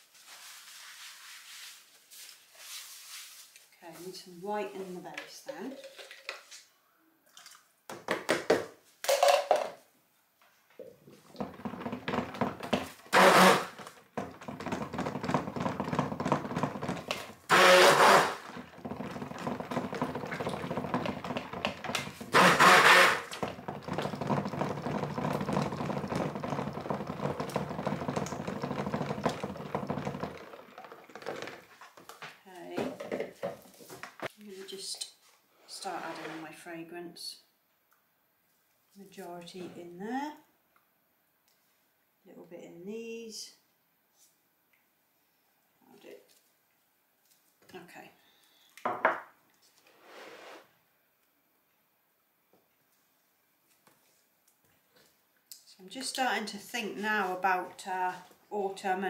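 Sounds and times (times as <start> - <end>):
knocks and scrapes: 11.1 - 34.3
stick blender running in bucket: 11.4 - 31.6.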